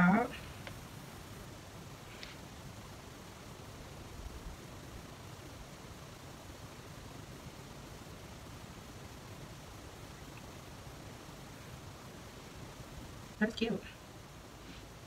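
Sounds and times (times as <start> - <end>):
faint room tone hiss: 0.0 - 15.0.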